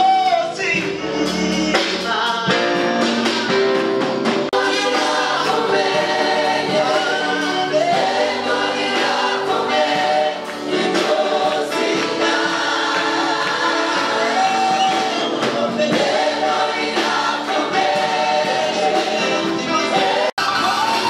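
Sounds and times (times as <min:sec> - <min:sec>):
choir singing in harmony: 0:00.4 - 0:21.0.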